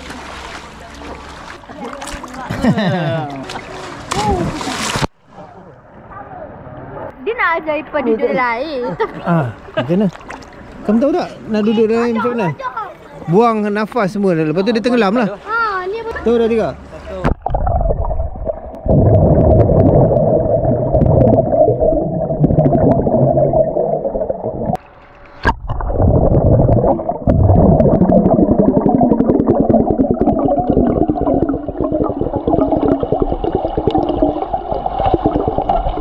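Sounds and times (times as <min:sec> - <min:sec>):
underwater rumble of water and bubbles: 0:17.2 - 0:36.0.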